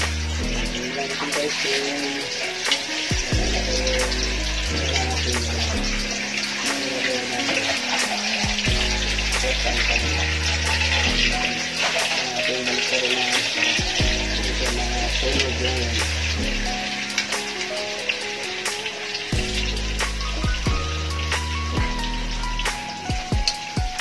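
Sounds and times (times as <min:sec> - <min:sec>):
background music with bass line: 0:00.0 - 0:24.0.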